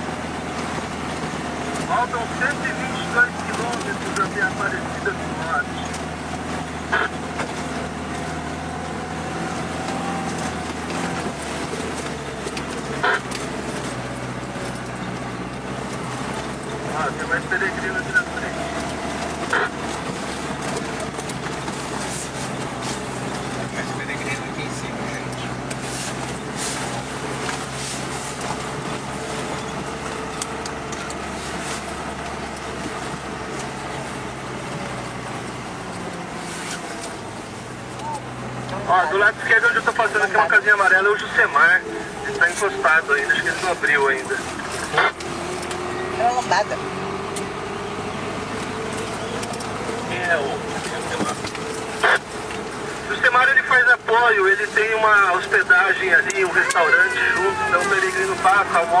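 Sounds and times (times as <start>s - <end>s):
car engine running: 0.0s - 59.0s.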